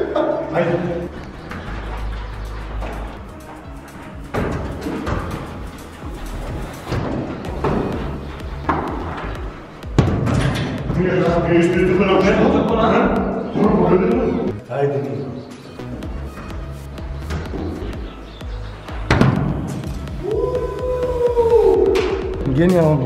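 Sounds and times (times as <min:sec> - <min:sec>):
men talking: 0:00.0 - 0:01.3, 0:10.9 - 0:15.5, 0:20.3 - 0:23.0
background music: 0:00.0 - 0:23.0.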